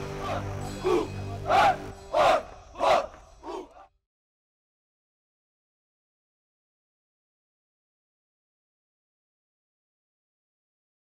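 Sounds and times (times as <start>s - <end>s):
soldiers shouting in unison: 0.0s - 3.9s.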